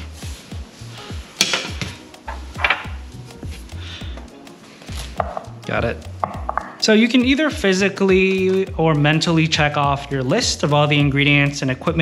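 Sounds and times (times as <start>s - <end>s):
music with bass beat: 0.0s - 12.0s
kitchen items knocking: 1.4s - 3.0s, 5.2s - 5.6s, 6.2s - 6.8s.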